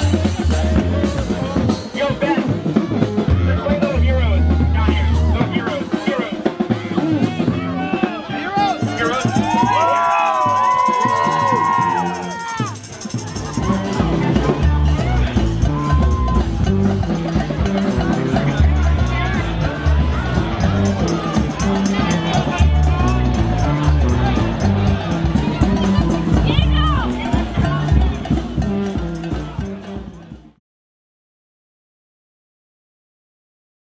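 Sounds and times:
crowd singing and shouting: 0:00.0 - 0:30.5
jazz band playing: 0:00.0 - 0:30.5
drums keeping a steady beat: 0:00.0 - 0:30.6
music with rhythmic bass line: 0:00.0 - 0:30.6.

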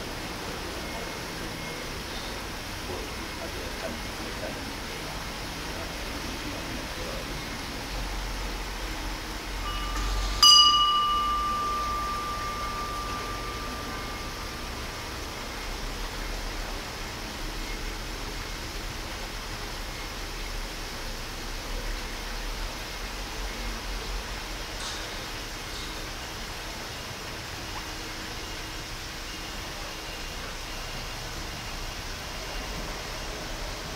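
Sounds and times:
steady low background noise: 0:00.0 - 0:33.9
bell ringing: 0:09.6 - 0:15.5.

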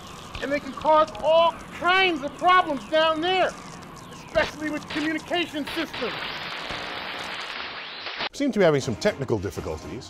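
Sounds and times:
signal static hiss: 0:00.0 - 0:08.4.

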